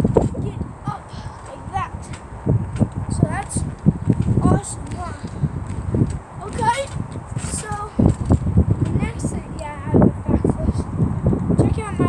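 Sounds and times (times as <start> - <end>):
indistinct voices: 0.0 - 2.3, 3.1 - 5.7, 6.4 - 8.2
low thumps: 0.0 - 12.0.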